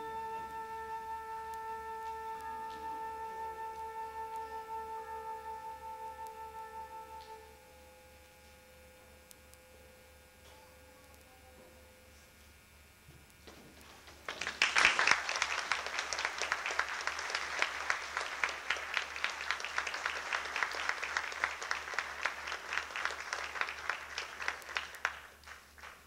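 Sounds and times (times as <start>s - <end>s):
audience applause: 14.0s - 26.0s.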